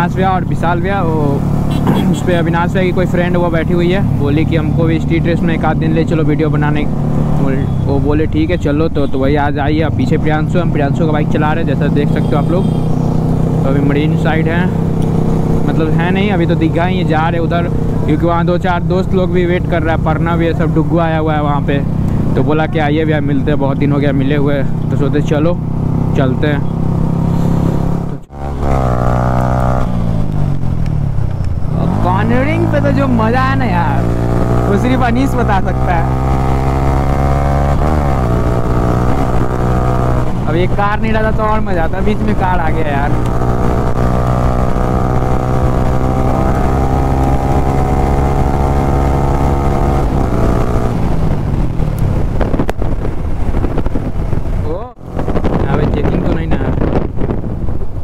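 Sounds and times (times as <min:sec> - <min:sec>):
motorcycle engine running: 0:00.0 - 0:09.2, 0:09.8 - 0:58.0
road noise: 0:00.0 - 0:58.0
wind rushing over microphone: 0:26.9 - 0:58.0.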